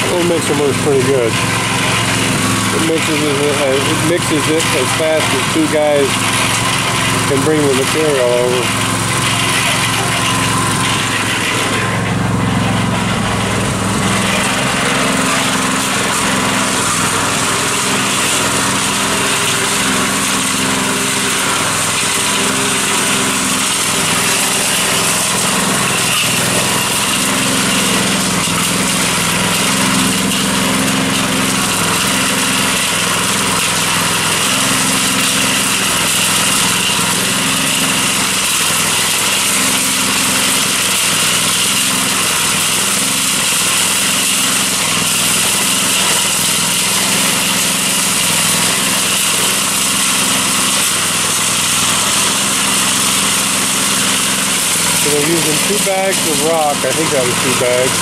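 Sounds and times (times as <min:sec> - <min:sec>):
cement mixer engine running: 0:00.0 - 0:58.0.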